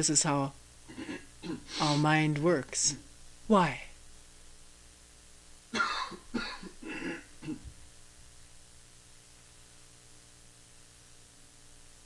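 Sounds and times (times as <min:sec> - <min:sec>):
person coughing: 0:00.9 - 0:02.0, 0:05.7 - 0:07.7.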